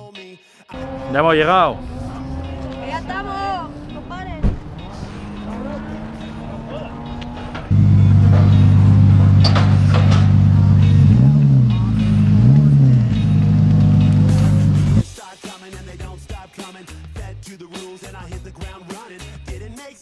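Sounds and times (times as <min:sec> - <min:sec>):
car engine idling and revving: 0:00.7 - 0:15.0.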